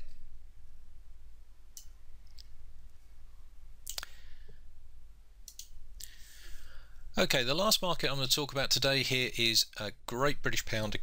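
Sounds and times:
low background hum: 0.0 - 11.0
computer mouse clicks: 5.4 - 5.8.

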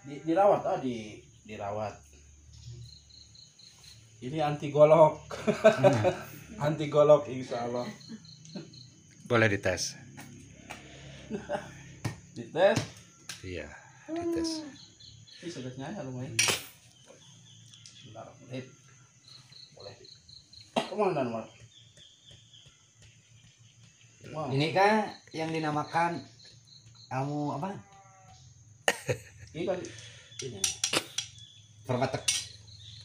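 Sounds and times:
cricket chirping faintly: 0.0 - 33.0
machete metallic clank: 16.4 - 16.7.

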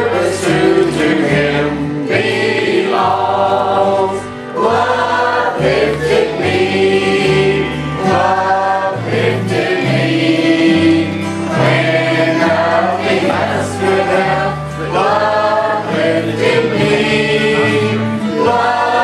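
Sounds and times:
choir singing a hymn: 0.0 - 19.0
strummed acoustic guitar: 0.0 - 19.0
walking bass guitar line: 0.0 - 19.0.

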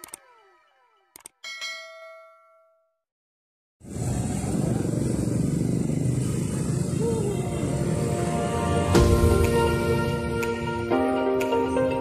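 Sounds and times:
quick clicks: 0.0 - 0.3, 1.1 - 1.4
street traffic rumble: 3.8 - 12.0.

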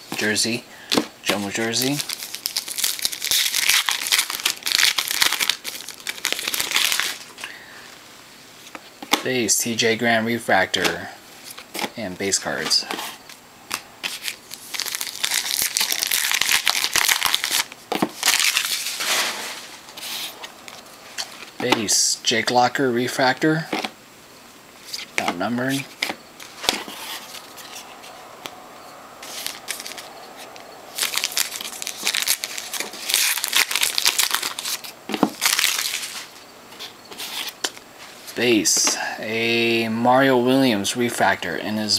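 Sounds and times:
foil wrapper crinkling: 1.2 - 7.5, 13.7 - 21.6, 29.2 - 37.8.

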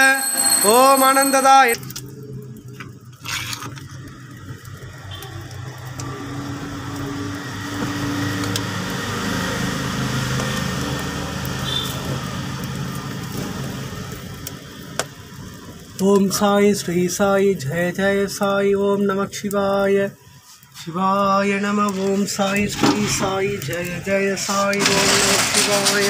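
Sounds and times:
wood fire crackling: 0.0 - 26.0.

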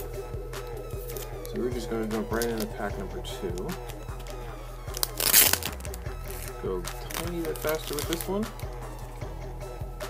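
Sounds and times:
foil wrapper crinkling and tearing: 2.2 - 2.8, 4.9 - 8.4.

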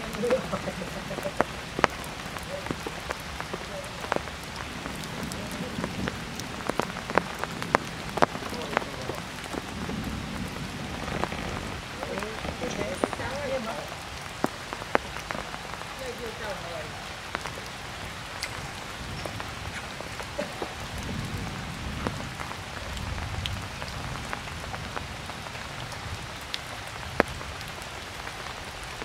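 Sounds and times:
heavy rain on stone and foliage: 0.0 - 29.0
raindrops tapping close by: 0.0 - 29.0.

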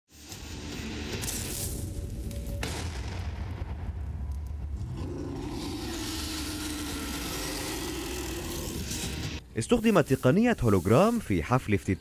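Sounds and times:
lion roar over loudspeakers: 4.8 - 9.0.

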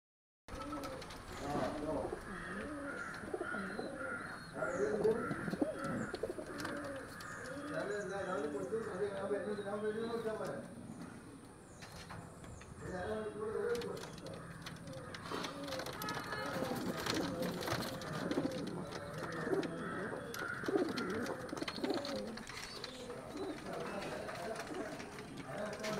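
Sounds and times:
pigeons cooing: 0.5 - 11.7, 12.8 - 25.9.

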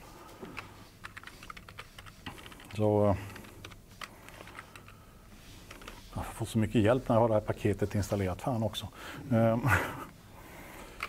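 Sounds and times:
laptop keyboard typing: 0.5 - 5.0.

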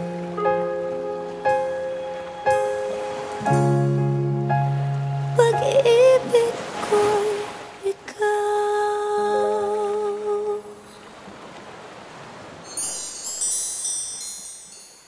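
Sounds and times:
high twinkling chime: 12.6 - 15.0.

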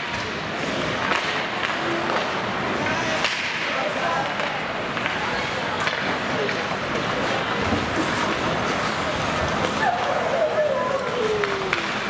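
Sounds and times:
skate blades scraping ice: 0.0 - 10.5
spectators' voices: 0.0 - 12.0
stick cracking on puck: 1.0 - 2.4.

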